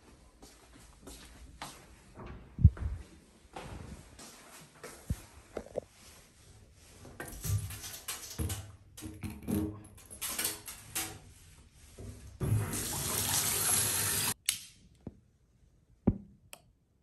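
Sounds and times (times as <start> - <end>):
water running into bathtub: 12.4 - 14.4.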